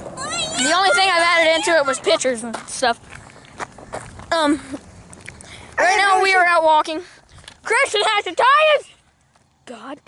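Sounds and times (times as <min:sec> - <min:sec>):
footsteps of people walking: 0:02.2 - 0:06.1, 0:06.7 - 0:08.3, 0:08.9 - 0:10.0.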